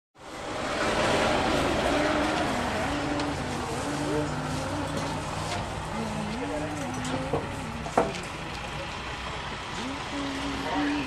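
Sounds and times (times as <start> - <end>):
broad crowd rush: 0.4 - 6.6
faint wavering voices: 1.4 - 11.0.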